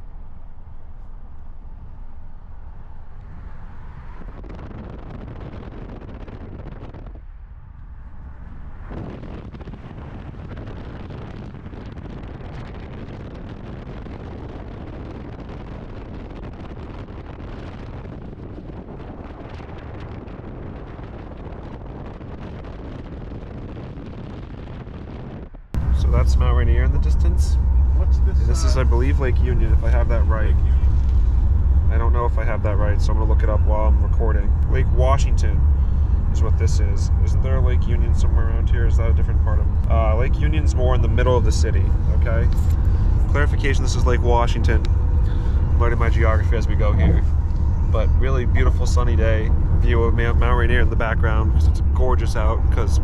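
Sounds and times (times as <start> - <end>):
tyre and road rumble: 0.0 - 53.0
wind buffeting microphone: 0.8 - 53.0.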